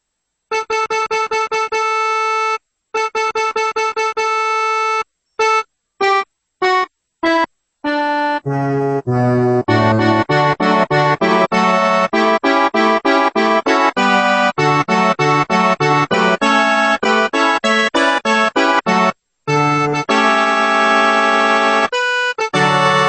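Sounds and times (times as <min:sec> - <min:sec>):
accordion bass notes and chords: 0:00.5 - 0:23.0
accordion melody: 0:00.5 - 0:23.0.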